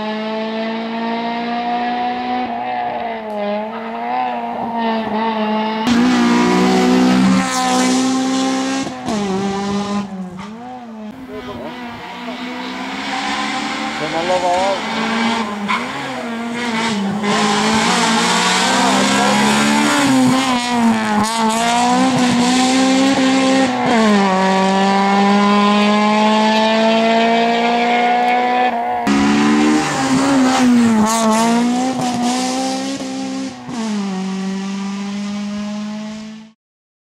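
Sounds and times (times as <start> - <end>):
rally car engine revving hard: 0.0 - 36.6.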